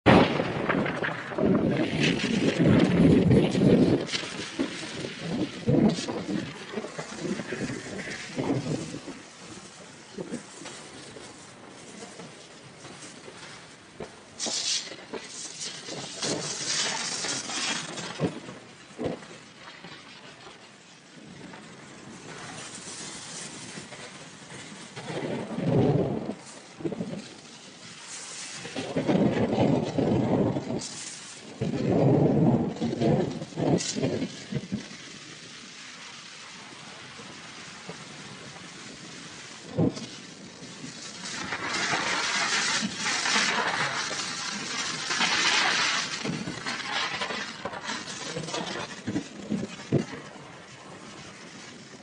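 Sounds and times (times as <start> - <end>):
tyre and road noise: 0.0 - 52.0
wind buffeting microphone: 0.0 - 52.0.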